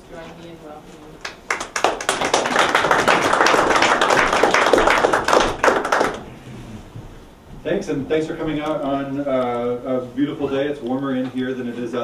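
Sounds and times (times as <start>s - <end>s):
audience applauding: 1.2s - 6.4s.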